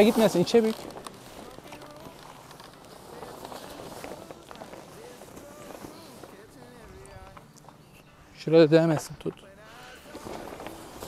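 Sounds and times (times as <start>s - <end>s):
tent fabric rustling: 0.0s - 11.0s.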